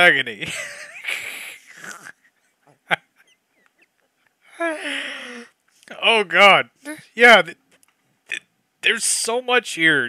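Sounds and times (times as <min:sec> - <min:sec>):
man's stifled laughter: 0:00.4 - 0:04.1.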